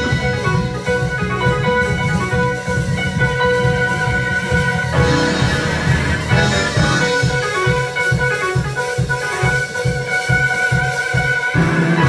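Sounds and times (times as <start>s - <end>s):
sustained chords: 0.0s - 7.9s
drum and bass beat: 0.0s - 12.0s.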